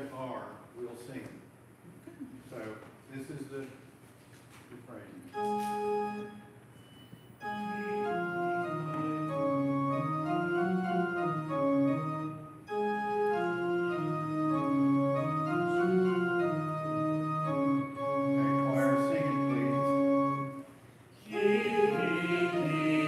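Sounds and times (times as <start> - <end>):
church organ playing chords: 5.3 - 6.6, 7.4 - 20.7, 21.3 - 23.0.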